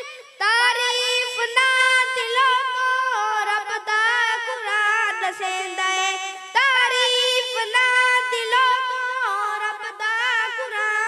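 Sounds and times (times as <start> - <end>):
child singing solo: 0.0 - 11.0.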